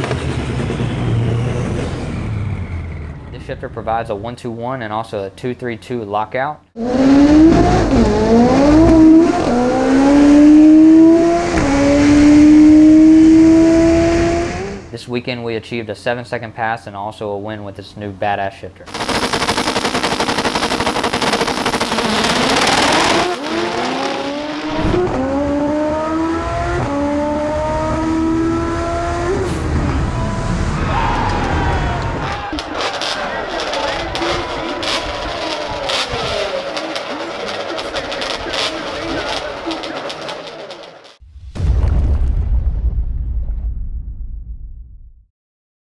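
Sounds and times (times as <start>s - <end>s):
race cars roaring: 0.0s - 3.5s, 6.8s - 14.9s, 21.4s - 41.2s
engine revving through gear shifts: 6.8s - 14.9s, 21.9s - 30.4s, 32.4s - 40.6s
deep boom: 41.2s - 45.3s.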